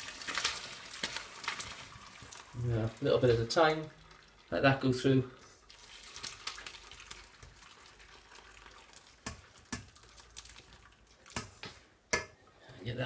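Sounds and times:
liquid trickling through colander: 0.0 - 12.7.

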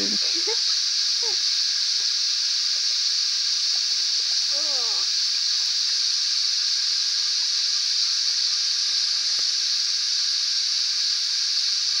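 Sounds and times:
high-pitched hissing drone: 0.0 - 12.0.

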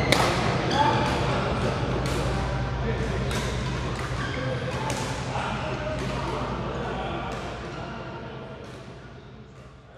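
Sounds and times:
steady low hum: 0.0 - 9.9
voices echoing in hall: 0.0 - 9.9.

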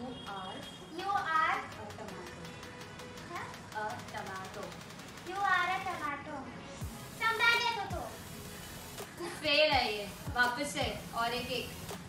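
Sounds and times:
girl's voice: 7.2 - 8.1.

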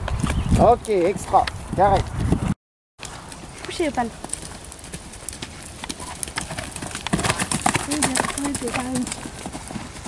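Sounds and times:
horse hoofbeats on gravel: 3.2 - 10.0.

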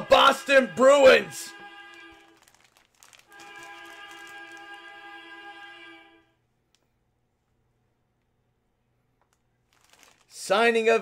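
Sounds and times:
plastic bag crinkling: 1.9 - 4.9, 9.2 - 11.0.

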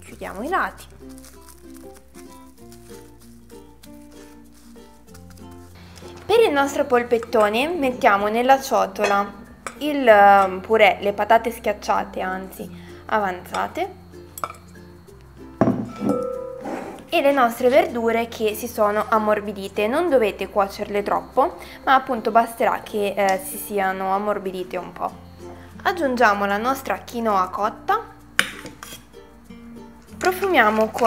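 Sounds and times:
soft background music: 0.0 - 31.0
glass bowl clinking on countertop: 9.0 - 9.8, 15.6 - 17.0.

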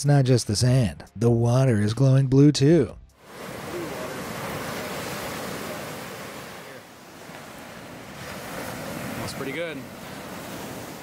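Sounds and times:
waves breaking on beach: 3.2 - 11.0.

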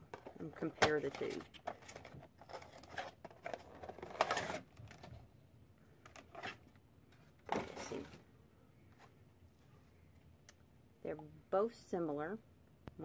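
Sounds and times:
cardboard box and plastic tray rustling: 0.0 - 5.3, 6.1 - 8.2.

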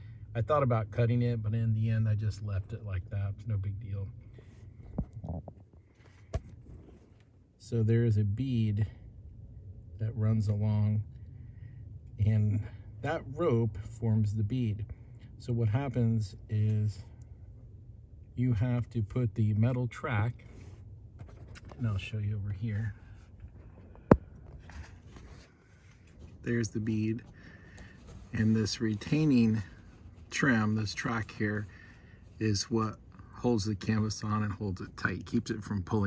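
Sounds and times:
faint rustling: 20.4 - 32.6.

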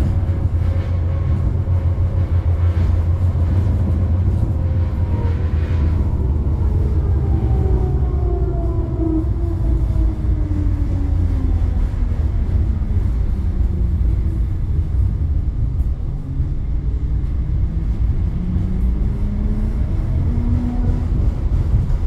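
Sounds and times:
tram rumbling on track: 0.0 - 22.0.

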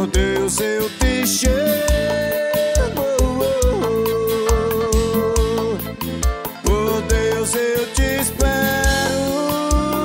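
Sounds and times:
electronic keyboard: 0.0 - 10.0
man singing: 0.0 - 10.0.

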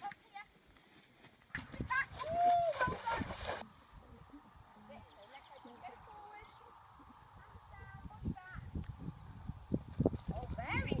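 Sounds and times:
horse hooves on grass: 0.0 - 3.6.

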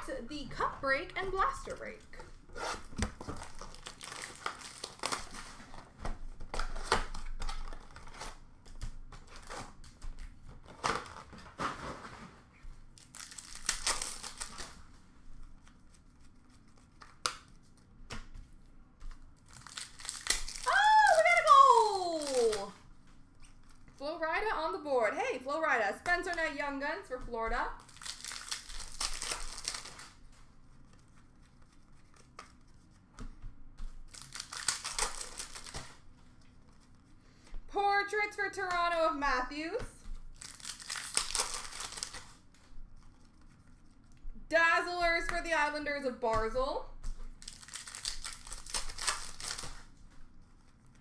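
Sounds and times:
wrappers crinkling and tearing: 1.5 - 11.7, 12.8 - 17.9, 19.1 - 24.1, 27.7 - 33.1, 34.0 - 37.1, 40.1 - 44.1, 47.2 - 51.0.

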